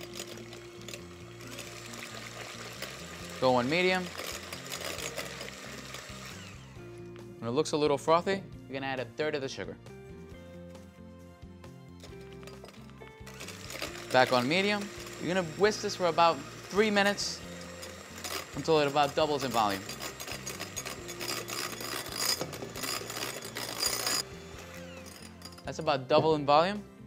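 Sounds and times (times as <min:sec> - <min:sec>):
beaters whipping in glass bowl: 0:00.0 - 0:06.4, 0:12.0 - 0:25.7
electric hand mixer humming: 0:00.0 - 0:07.2, 0:12.1 - 0:25.6
background music: 0:00.0 - 0:27.0.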